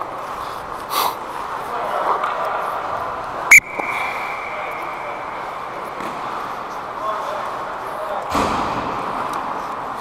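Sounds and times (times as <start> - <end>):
ice rink background hum: 0.0 - 10.0.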